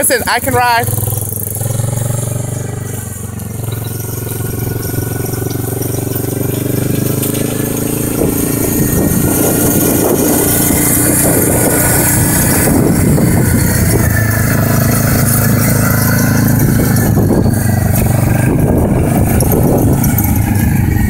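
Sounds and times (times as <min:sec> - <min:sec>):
quad bike engine running: 0:00.0 - 0:21.0.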